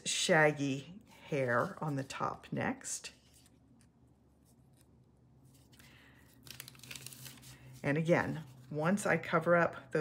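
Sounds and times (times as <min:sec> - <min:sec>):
paper backing peeling: 0:03.2 - 0:07.6.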